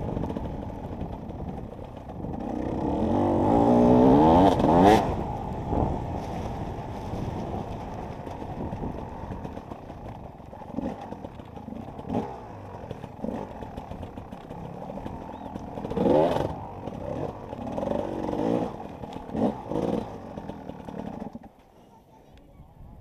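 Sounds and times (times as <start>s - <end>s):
dirt bike engine revving: 0.0s - 21.5s.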